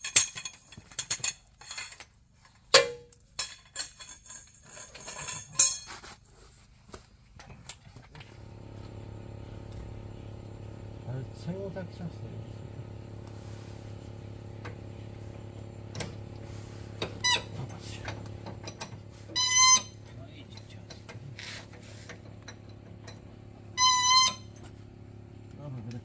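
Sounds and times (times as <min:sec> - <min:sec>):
steady low hum: 0:03.4 - 0:26.0
bolt squealing: 0:17.0 - 0:21.2, 0:22.1 - 0:24.6.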